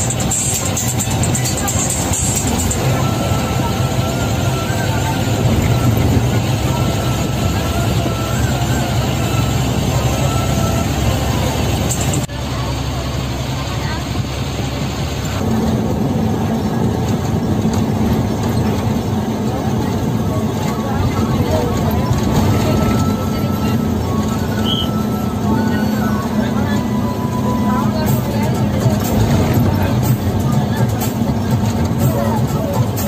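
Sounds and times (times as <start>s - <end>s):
bus engine running: 0.0s - 33.0s
road noise: 0.0s - 33.0s.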